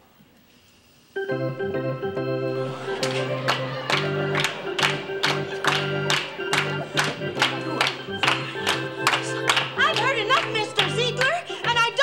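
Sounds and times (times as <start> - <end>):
electric organ playing chords: 1.2 - 12.0
sharp rhythmic beats: 2.6 - 12.0.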